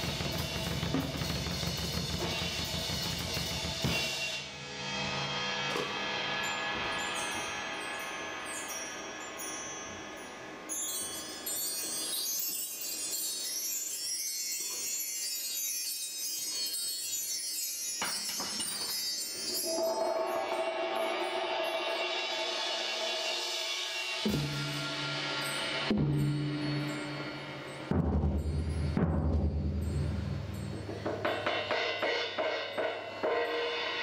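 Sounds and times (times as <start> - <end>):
cymbals ringing: 0.0 - 34.0
bar chimes tinkling: 6.4 - 23.6, 24.4 - 34.0
low sustained ringing tone: 19.3 - 29.0.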